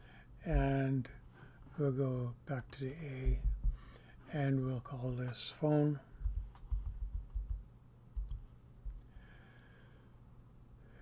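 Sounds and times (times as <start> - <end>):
computer keyboard typing: 6.2 - 7.6, 8.2 - 8.4.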